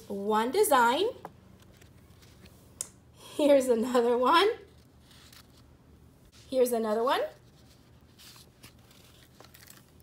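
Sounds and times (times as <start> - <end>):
paper rustling: 4.7 - 5.7, 7.4 - 10.0.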